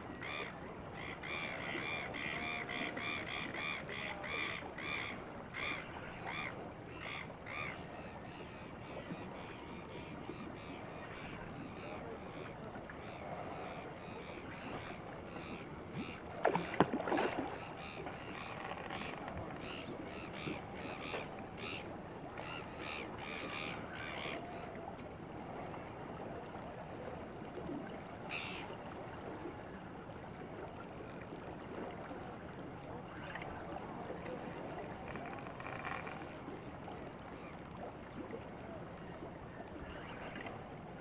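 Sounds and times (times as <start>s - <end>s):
water: 0.0s - 41.0s
wind: 0.0s - 41.0s.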